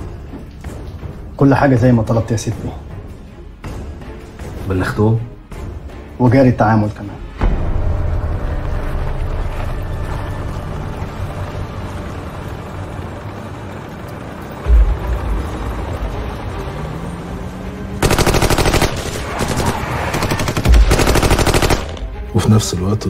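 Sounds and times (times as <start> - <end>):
low rumbling: 7.4 - 20.3
automatic rifle fire: 18.0 - 22.1.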